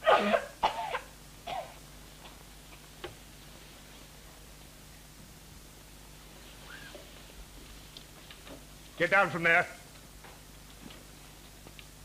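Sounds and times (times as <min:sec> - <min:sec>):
girl coughing: 0:00.0 - 0:01.8.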